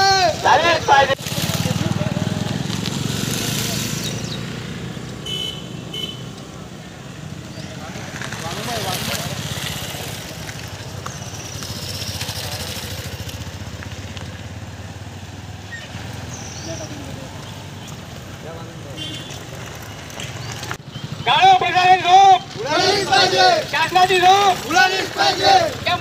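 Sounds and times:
people talking: 0.0 - 2.7, 7.8 - 10.4, 21.3 - 26.0
motorcycle engine running: 1.2 - 17.8.

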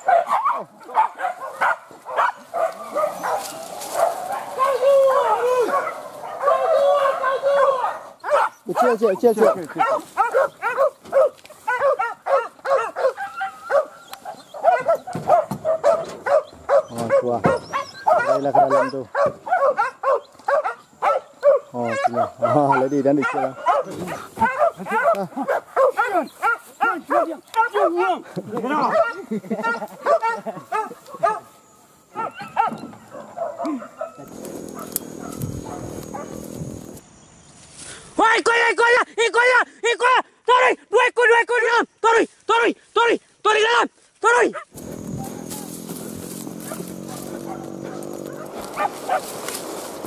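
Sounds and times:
dogs yelping and whining: 0.0 - 28.0, 28.7 - 37.0, 44.8 - 49.4
rustling: 1.4 - 6.4, 34.2 - 38.0, 44.8 - 50.0.

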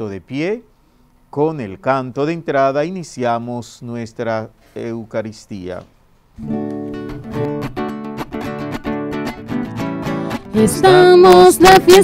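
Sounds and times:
acoustic guitar strumming chords: 6.4 - 12.0.

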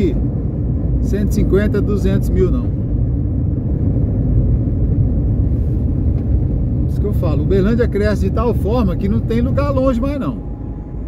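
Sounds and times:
car engine and tyre rumble: 0.0 - 11.0.

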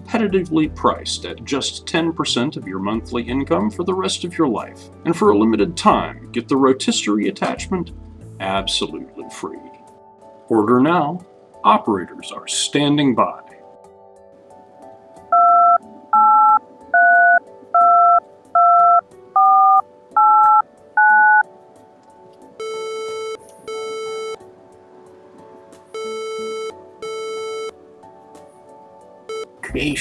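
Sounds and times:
buzzing telephone ringback tone: 15.3 - 21.4, 22.6 - 24.4, 26.0 - 27.7, 29.3 - 29.6
touch-tone keypad beeps: 15.3 - 21.4, 22.6 - 24.4, 26.0 - 27.7, 29.3 - 29.6.

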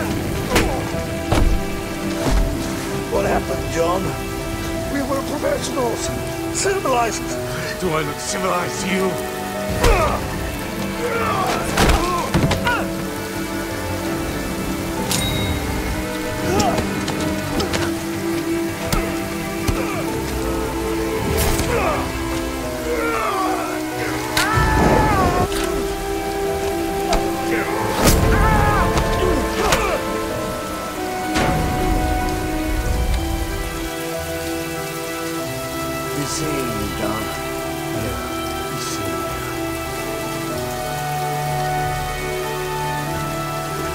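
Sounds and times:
heavy rain falling: 0.0 - 43.9
low sustained music: 0.0 - 43.9.

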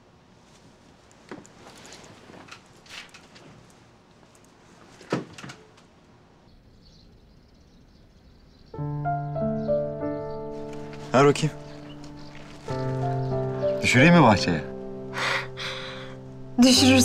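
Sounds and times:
music with held chords: 8.8 - 17.0.

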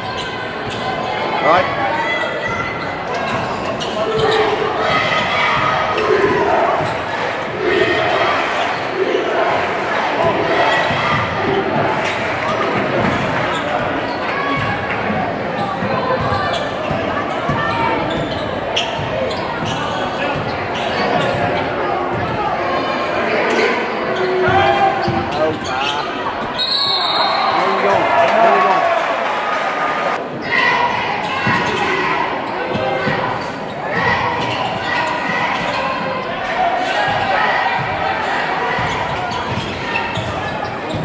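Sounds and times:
crowd chatter: 0.0 - 41.0.

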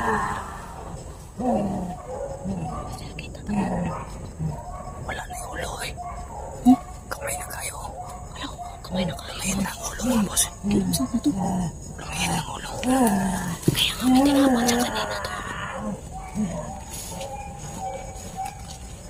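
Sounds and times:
person murmuring: 8.9 - 15.7.

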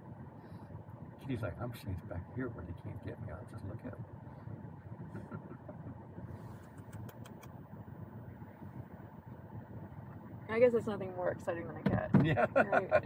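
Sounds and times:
car engine idling: 0.0 - 13.0
faint clicks: 6.6 - 7.6.

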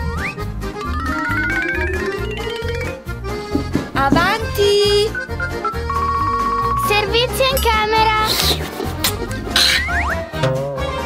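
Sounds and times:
children's background music: 0.0 - 11.0.

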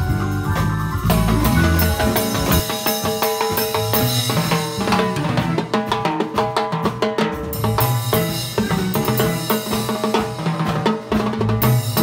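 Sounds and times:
drum kit: 0.0 - 12.0
live band playing: 0.0 - 12.0
timbales and cowbell struck rapidly: 0.0 - 12.0.

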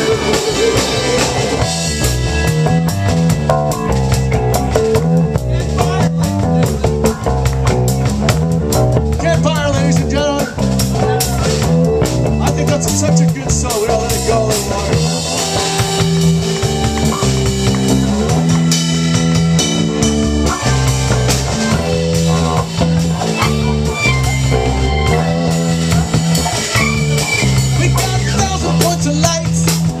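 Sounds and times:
drum kit: 0.0 - 30.0
electric guitar chords: 0.0 - 30.0.

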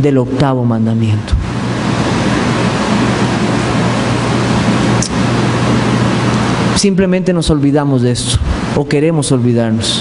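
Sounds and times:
low hum: 0.0 - 9.0
microphone hiss: 0.0 - 10.0.

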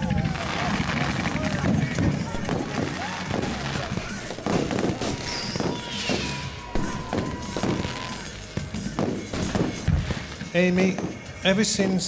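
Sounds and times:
fireworks banging and crackling: 0.0 - 12.0.

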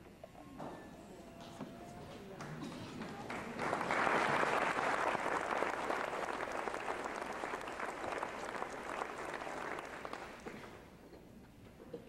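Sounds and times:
audience applauding: 2.1 - 10.8.

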